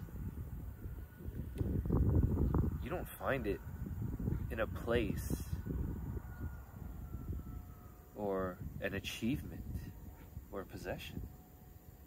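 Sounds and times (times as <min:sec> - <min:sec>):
low rumble: 0:00.0 - 0:11.5
faint distant hum: 0:00.0 - 0:12.0.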